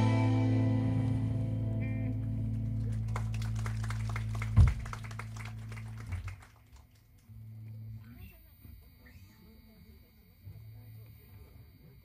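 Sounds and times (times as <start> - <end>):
electric guitar chord ringing: 0.0 - 3.6, 7.3 - 12.0
low amplifier hum: 0.0 - 12.0
audience clapping: 2.0 - 7.4.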